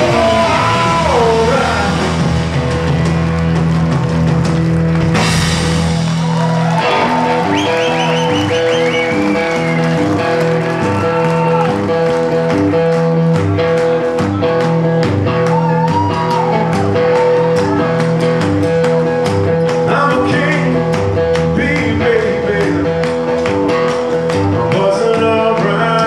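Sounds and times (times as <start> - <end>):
bent gliding guitar notes: 0.0 - 26.0
blues-rock band playing: 0.0 - 26.0.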